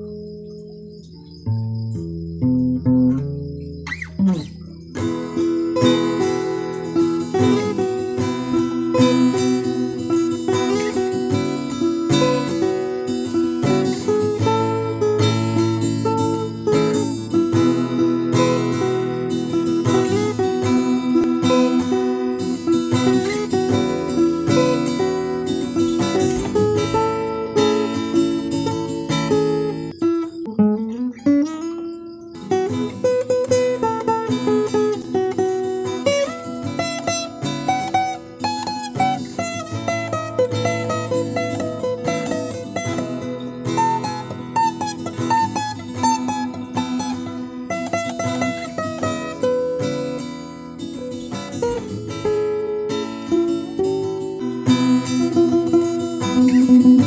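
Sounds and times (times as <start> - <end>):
acoustic guitar playing chords: 0.0 - 57.0.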